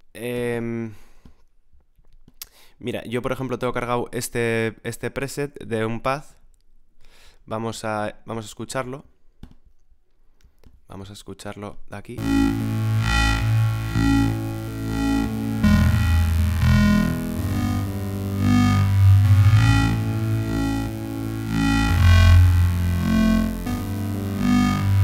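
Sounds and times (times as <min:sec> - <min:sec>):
deep synth bass: 0:12.2 - 0:25.0
sustained synth pad chords: 0:12.2 - 0:25.0.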